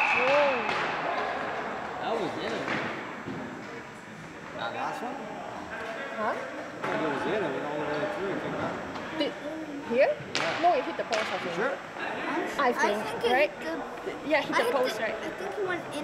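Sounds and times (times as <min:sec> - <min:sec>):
players talking and calling: 0:00.0 - 0:16.0.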